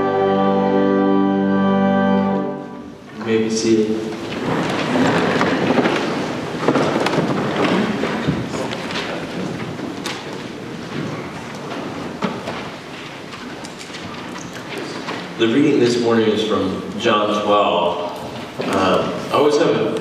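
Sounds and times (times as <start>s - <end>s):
rustling and shuffling: 2.7s - 17.1s, 17.9s - 19.4s
knocks and creaks of wooden pews: 3.0s - 20.0s.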